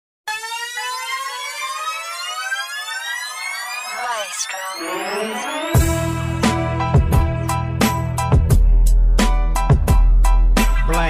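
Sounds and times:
rising siren-like tone: 0.3 - 7.8.

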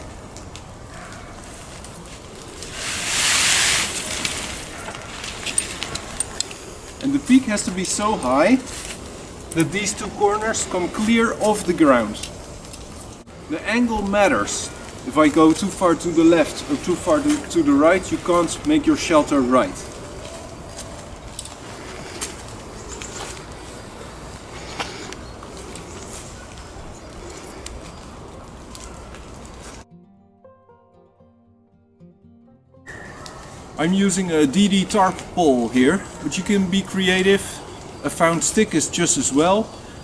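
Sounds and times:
tarp fabric rustling: 0.0 - 29.8
faint ticks and crackles: 19.8 - 29.8.

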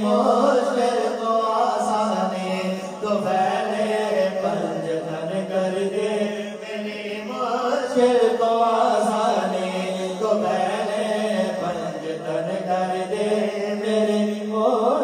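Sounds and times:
low held vocal drone: 0.0 - 15.0
men chanting devotional poem: 0.0 - 15.0.

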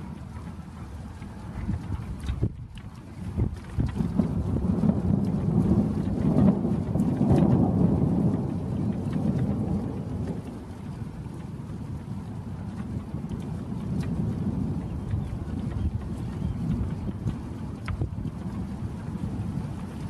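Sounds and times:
thunder rumbling: 0.0 - 20.0
rain hiss: 3.2 - 20.0.

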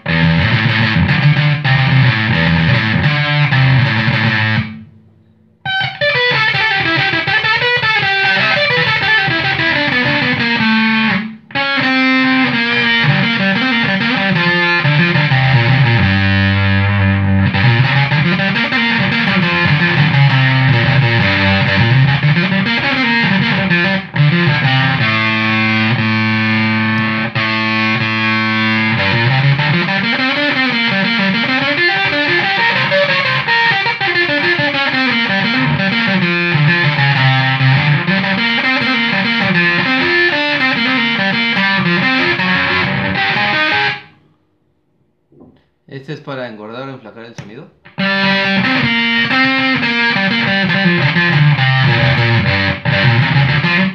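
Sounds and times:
distorted fuzz guitar riffs: 0.0 - 44.4, 47.8 - 53.9.

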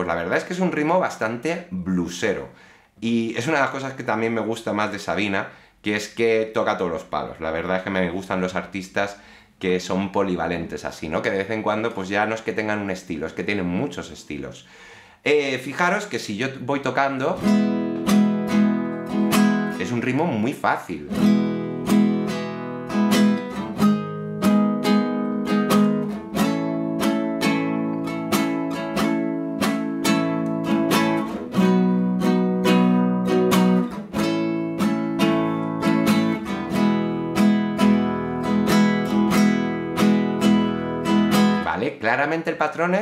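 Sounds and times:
acoustic guitar strumming: 17.4 - 19.8, 21.1 - 41.7.

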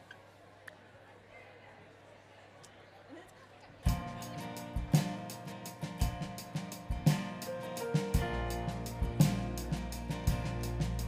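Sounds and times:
live band playing: 3.9 - 11.0.

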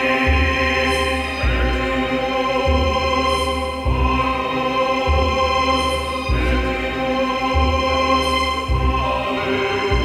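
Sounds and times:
choir singing sustained chords: 0.0 - 10.0.

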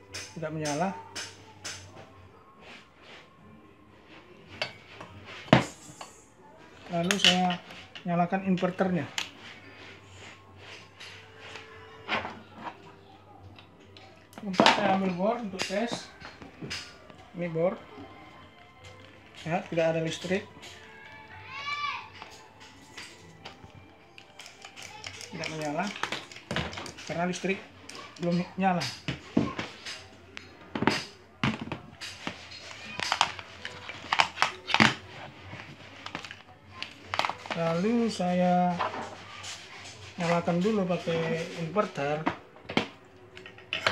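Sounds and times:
clicks and rustling of wires: 22.1 - 37.9.

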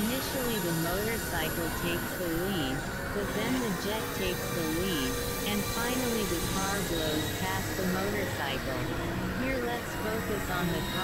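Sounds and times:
synthesizer drone tones: 0.0 - 11.0.

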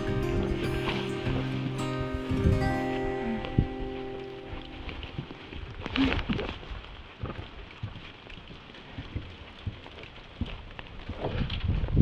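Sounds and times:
rain on a wooden deck: 0.0 - 12.0.

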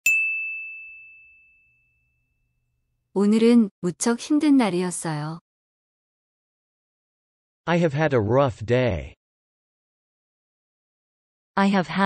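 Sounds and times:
bright chime ringing: 0.0 - 2.3.

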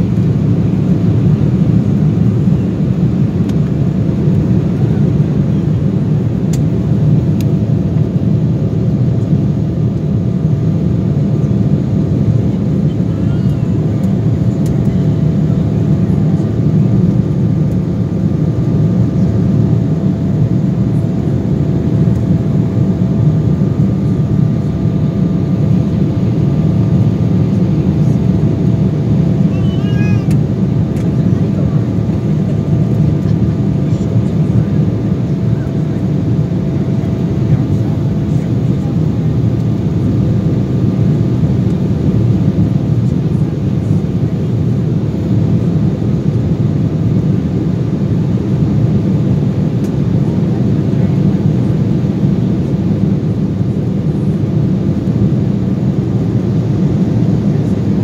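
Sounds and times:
jet engine rumble: 0.0 - 58.0.

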